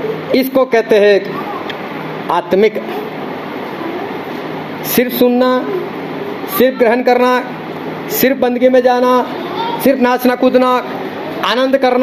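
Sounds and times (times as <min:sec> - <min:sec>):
person speaking: 0:00.2 - 0:12.0.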